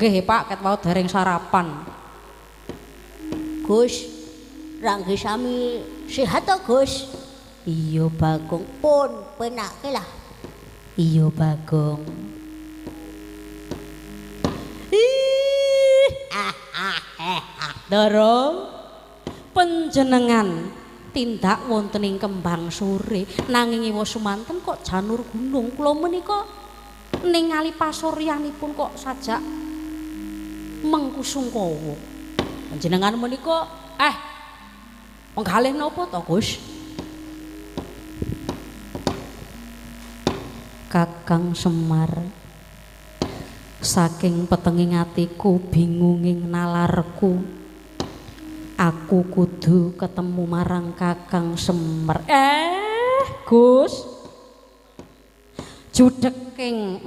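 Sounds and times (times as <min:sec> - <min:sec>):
electrical hum: 0:00.0 - 0:57.0
soft held tone: 0:00.7 - 0:55.2.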